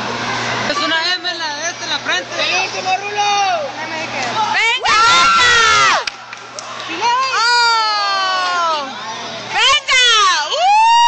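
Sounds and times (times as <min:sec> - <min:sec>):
crowd chatter: 0:00.0 - 0:10.6.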